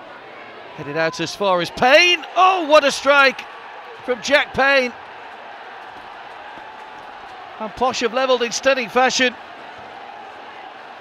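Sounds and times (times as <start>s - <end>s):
stadium crowd cheering: 0.0s - 11.0s.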